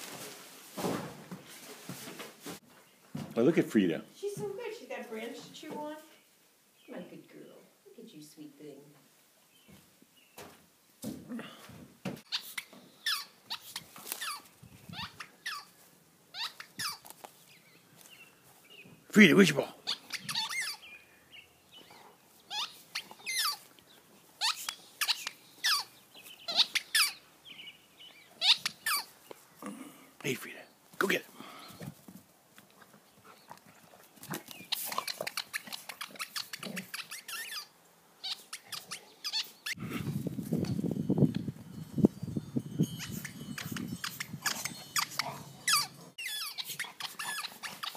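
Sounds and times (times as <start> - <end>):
squeaky ball squeaking: 12.3 - 15.7, 16.4 - 17.0, 19.9 - 20.8, 22.5 - 23.6, 24.4 - 25.9, 26.5 - 27.2, 28.4 - 29.1, 34.5 - 39.8, 42.8 - 47.9.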